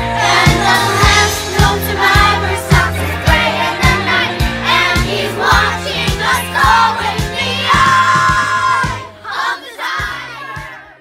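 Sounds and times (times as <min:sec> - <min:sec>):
song with steady beat: 0:00.0 - 0:09.2
children shouting and cheering: 0:00.2 - 0:11.0.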